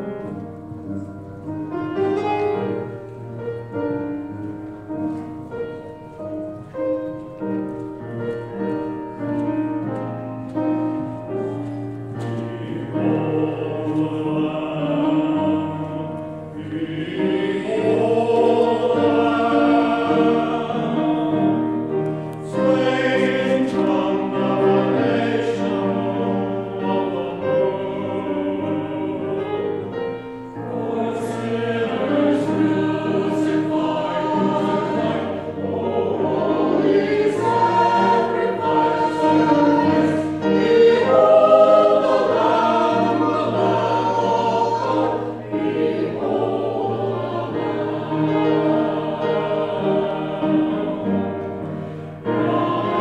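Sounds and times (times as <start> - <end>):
choir singing: 0.0 - 53.0
piano accompaniment: 0.0 - 53.0.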